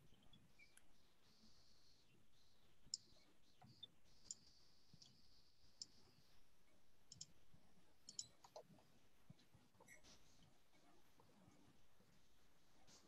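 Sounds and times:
computer clicks: 0:07.1 - 0:07.4, 0:08.0 - 0:08.6.

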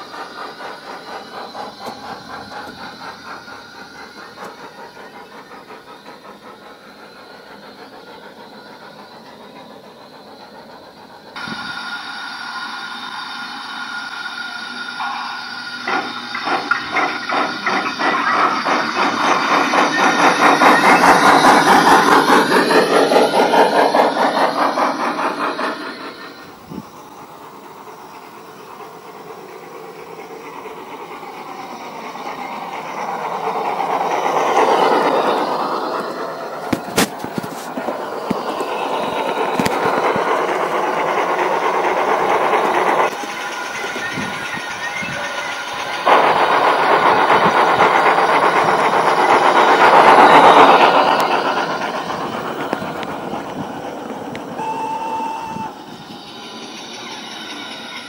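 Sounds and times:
model train clicking clatter: 0:00.0 - 0:11.6, 0:15.9 - 0:58.0.

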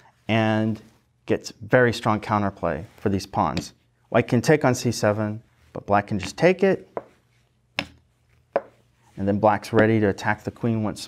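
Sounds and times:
chess pieces knocking on board: 0:06.2 - 0:07.2, 0:07.8 - 0:08.8.

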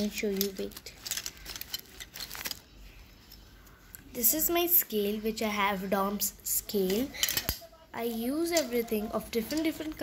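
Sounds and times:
stationery clicking and rattling: 0:00.0 - 0:04.0, 0:06.7 - 0:10.0.

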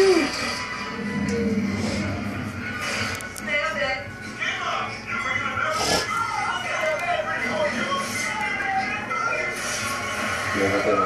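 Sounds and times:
television music and talk: 0:00.0 - 0:11.0.

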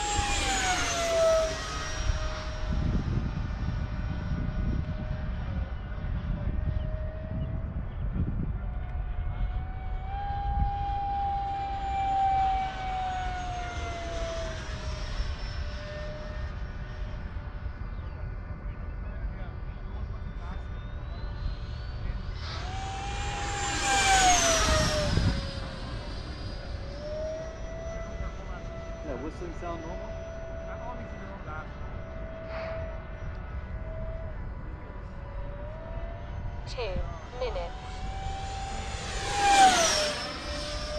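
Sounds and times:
model jet ducted fan whining: 0:00.0 - 0:40.9
wind rumbling on microphone: 0:00.0 - 0:40.9.

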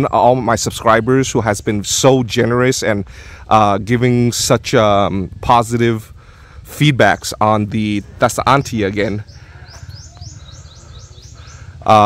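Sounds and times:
man's voice: 0:00.0 - 0:09.4
small bird chirping: 0:06.6 - 0:12.0.

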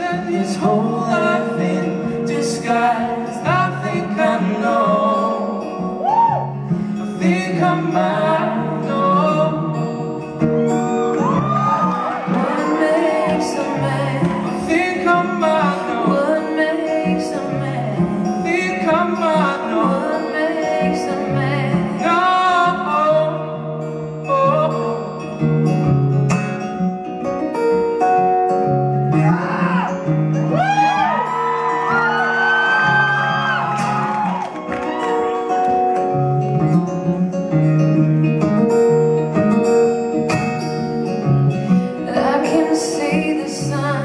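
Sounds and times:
man and woman singing: 0:00.0 - 0:06.4, 0:07.0 - 0:10.2, 0:11.9 - 0:23.6, 0:41.7 - 0:44.0
acoustic guitar strumming: 0:00.0 - 0:44.0.

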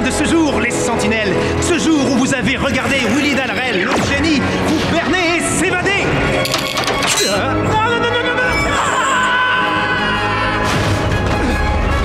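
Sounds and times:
clattering noise: 0:06.4 - 0:07.4.

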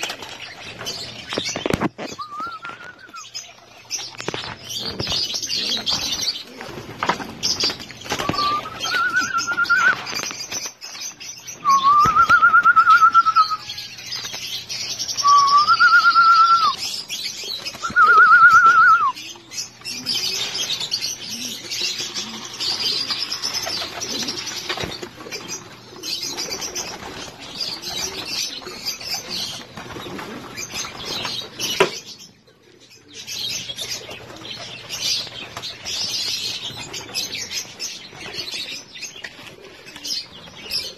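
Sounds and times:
wings flapping: 0:00.0 - 0:03.2, 0:03.9 - 0:11.0, 0:21.8 - 0:31.6
pigeons cooing: 0:00.0 - 0:10.6, 0:11.5 - 0:40.9
rustling and clicks from cages: 0:00.0 - 0:11.2.

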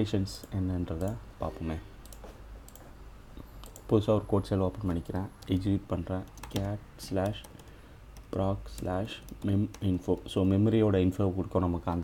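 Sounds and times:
low room noise: 0:00.0 - 0:12.0
computer mouse clicks: 0:02.0 - 0:04.0, 0:06.2 - 0:10.3.

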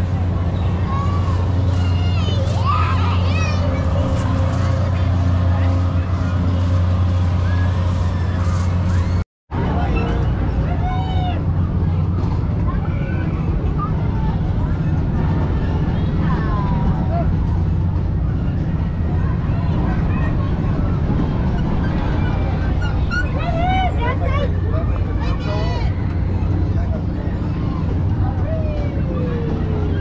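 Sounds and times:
children's voices and calls: 0:00.0 - 0:30.0
crowd babble: 0:00.0 - 0:30.0
low machinery drone: 0:00.0 - 0:30.0.

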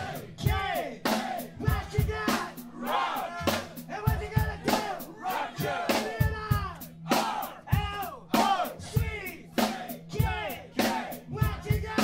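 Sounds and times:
crowd shouting along: 0:00.0 - 0:03.6, 0:04.6 - 0:12.0
hard-hit drums: 0:00.0 - 0:12.0
heavy metal band playing: 0:00.0 - 0:12.0
shouted vocals: 0:00.0 - 0:12.0.

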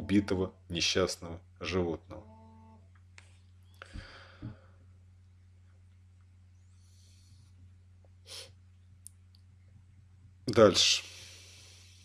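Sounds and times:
low hum: 0:00.0 - 0:12.0
person breathing: 0:03.8 - 0:04.9, 0:06.7 - 0:07.6, 0:11.0 - 0:12.0.

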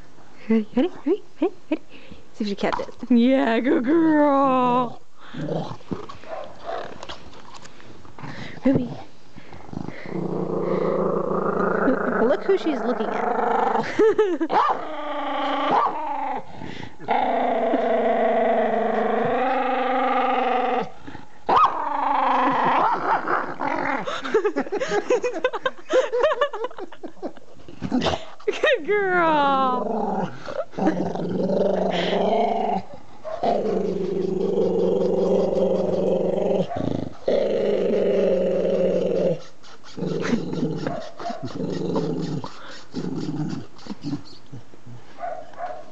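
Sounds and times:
dog moaning: 0:09.7 - 0:14.0, 0:14.8 - 0:24.4, 0:29.2 - 0:44.8.

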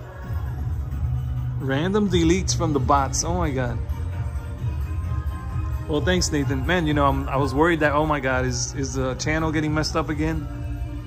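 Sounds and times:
parade music from television speaker: 0:00.0 - 0:11.0.

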